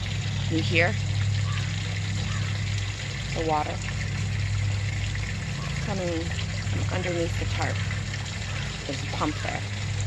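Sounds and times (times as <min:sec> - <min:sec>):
water pump humming: 0:00.0 - 0:10.0
water running and trickling: 0:00.0 - 0:10.0.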